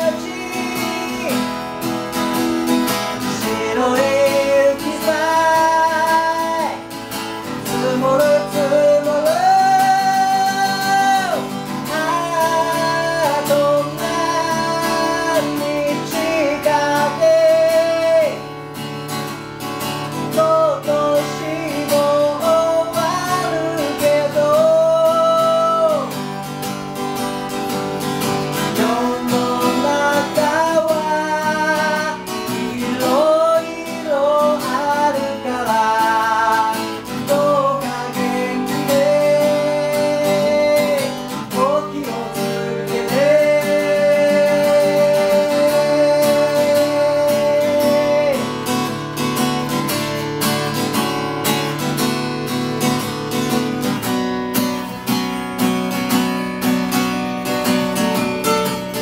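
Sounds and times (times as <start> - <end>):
men singing: 0.0 - 1.8, 3.1 - 18.5, 20.2 - 26.2, 28.6 - 48.7
acoustic guitar strumming: 0.0 - 59.0.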